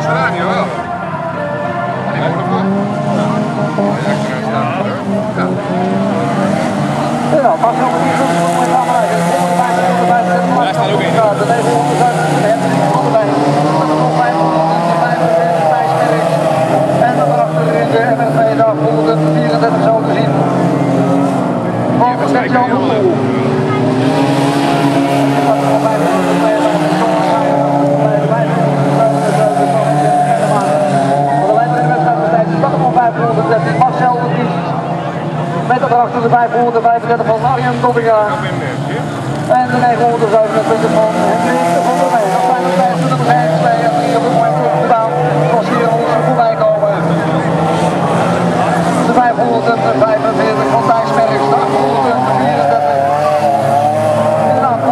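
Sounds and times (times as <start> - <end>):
race car engines revving: 0.0 - 54.9.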